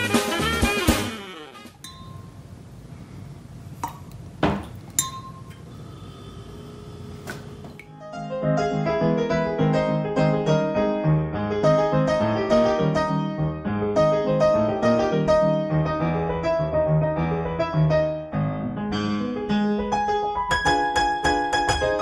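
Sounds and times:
straw clinking against glasses: 3.8s - 5.7s
solo piano music: 7.8s - 22.0s.

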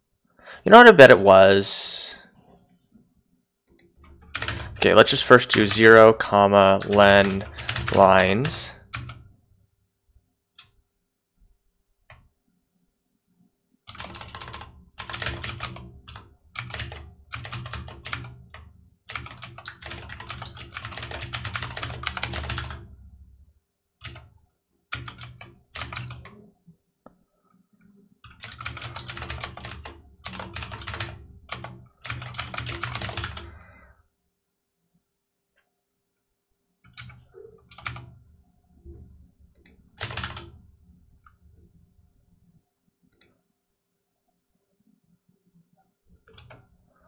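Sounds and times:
typing on computer keyboard: 3.7s - 5.1s, 6.6s - 9.3s, 13.9s - 22.9s, 24.0s - 24.3s, 24.9s - 26.4s, 28.2s - 33.6s, 36.8s - 38.1s, 39.6s - 40.6s, 46.2s - 46.7s.

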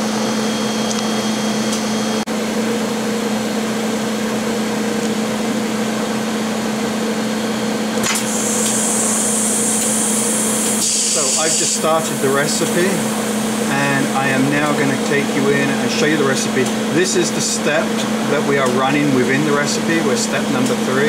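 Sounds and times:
machine hum: 0.0s - 21.0s.

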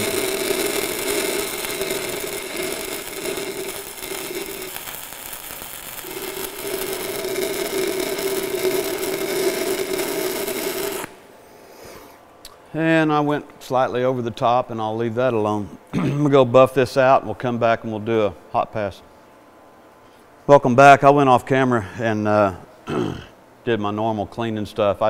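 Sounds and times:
welding arc crackling: 0.0s - 11.2s
low hum: 0.0s - 11.3s.

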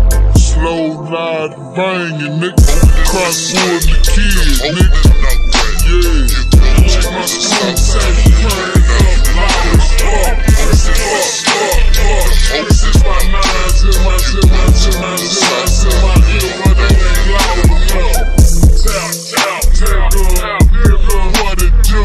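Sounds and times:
rapping over a beat: 0.0s - 22.0s.

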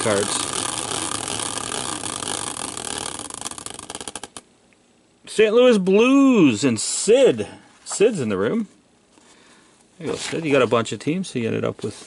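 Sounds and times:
caster wheel whirring: 0.0s - 4.4s
wheel clicking: 0.0s - 4.4s.

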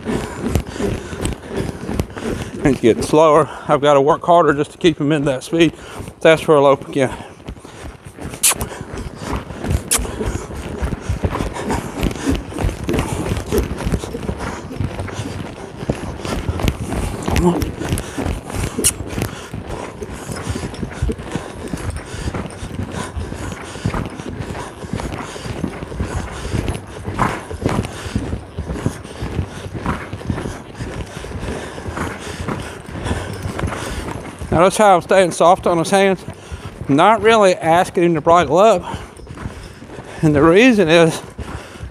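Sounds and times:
horse hoofbeats on sand: 0.0s - 41.9s.

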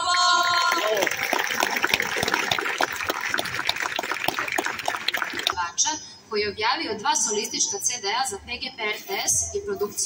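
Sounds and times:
audience applauding: 0.1s - 5.6s.

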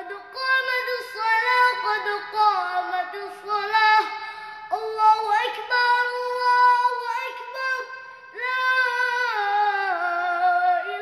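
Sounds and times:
boy chanting call to prayer: 0.0s - 11.0s.

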